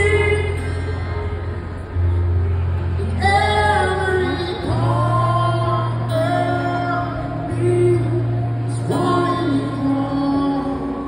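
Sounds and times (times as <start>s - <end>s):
acoustic guitar: 0.0s - 11.0s
man singing: 3.2s - 11.0s.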